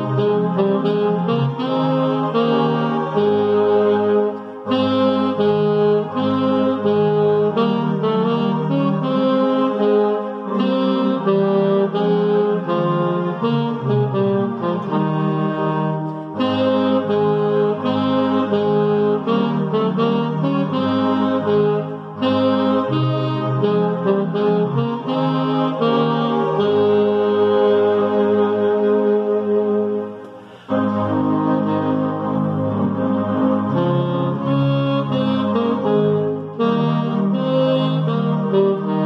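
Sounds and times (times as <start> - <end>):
saxophone playing hymn tune: 0.0 - 39.0.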